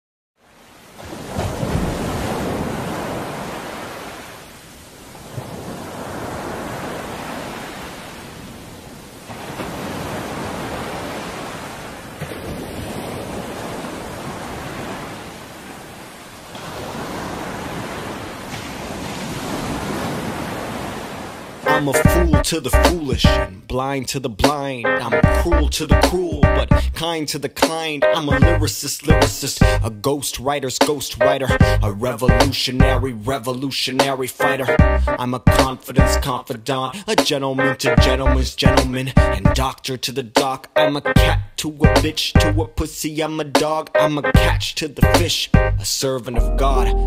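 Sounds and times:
sea waves breaking on shore: 0:00.4 - 0:21.7.

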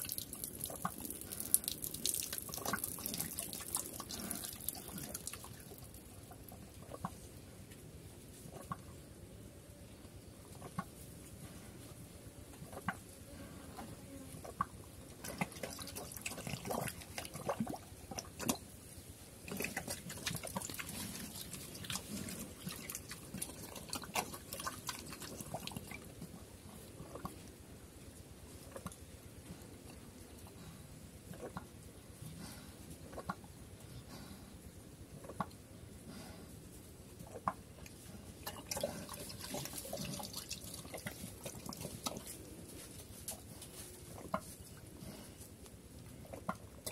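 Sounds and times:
pig slurping slop: 0:00.0 - 0:07.2, 0:14.4 - 0:18.8, 0:19.4 - 0:27.5, 0:37.2 - 0:46.9.

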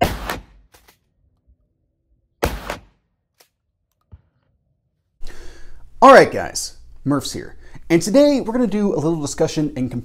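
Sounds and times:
gunshot: 0:00.0 - 0:00.8, 0:02.4 - 0:03.0
steady room hiss: 0:05.2 - 0:10.0.

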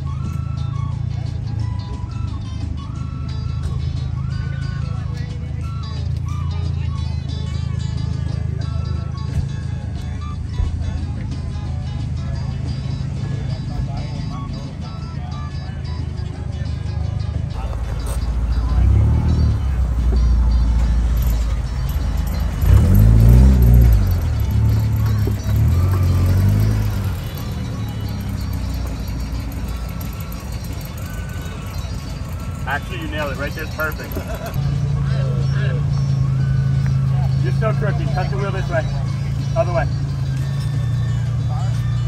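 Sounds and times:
background music: 0:00.0 - 0:42.0
car engine revving: 0:17.6 - 0:42.0.

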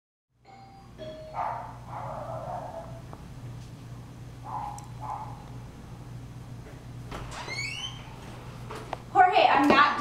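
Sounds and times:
doorbell chime ringing: 0:00.4 - 0:01.7.

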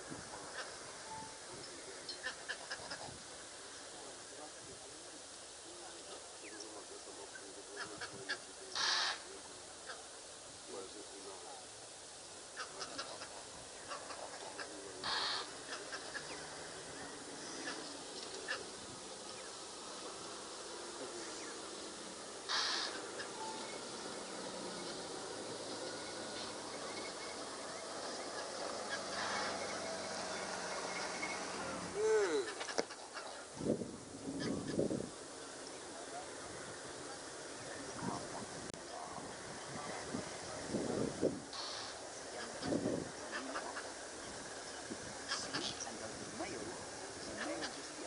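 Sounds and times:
outdoor background: 0:00.0 - 0:48.0
bird and animal calls: 0:00.4 - 0:03.2, 0:06.1 - 0:10.1, 0:12.3 - 0:33.5.

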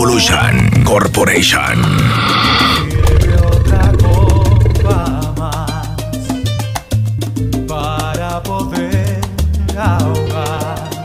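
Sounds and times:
lion roar sound effect: 0:00.0 - 0:06.3
salsa music with heavy bass: 0:02.1 - 0:11.0.

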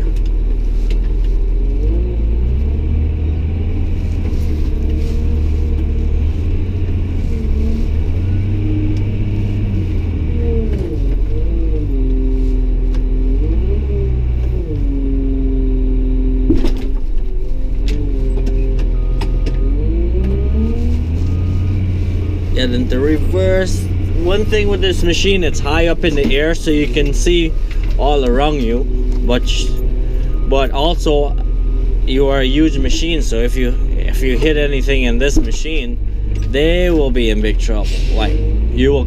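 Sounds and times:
diesel engine revving: 0:00.0 - 0:39.0.

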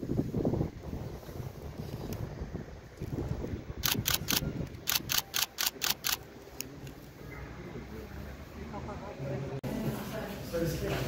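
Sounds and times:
wind rumble: 0:00.0 - 0:06.2
camera shutters clicking: 0:03.8 - 0:06.3.

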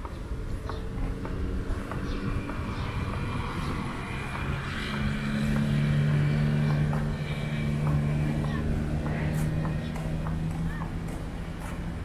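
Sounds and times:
traffic rumble: 0:00.0 - 0:12.0
vehicle engine hum: 0:00.0 - 0:12.0.

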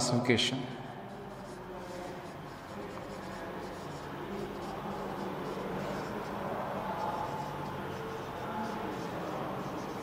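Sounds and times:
steady low hum: 0:00.6 - 0:10.0
marker writing on whiteboard: 0:01.0 - 0:10.0.

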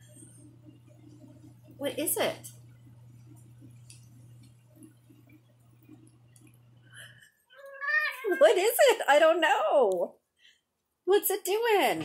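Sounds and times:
washing machine running: 0:00.0 - 0:09.6
cat meowing: 0:07.6 - 0:08.6.

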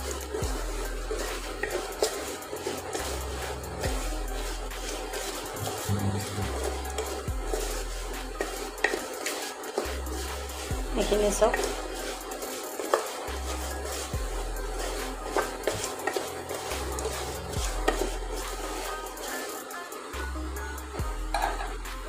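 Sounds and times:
background music with bass: 0:00.0 - 0:09.1, 0:09.9 - 0:12.6, 0:13.3 - 0:19.3, 0:20.2 - 0:22.0
wooden spatula scraping pot: 0:00.0 - 0:20.2, 0:21.3 - 0:21.8.

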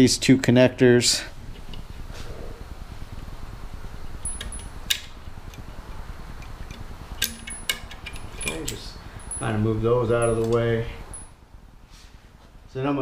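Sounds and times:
steady low hum: 0:00.0 - 0:13.0
wiring connectors clicking: 0:04.2 - 0:09.5, 0:10.1 - 0:11.3.

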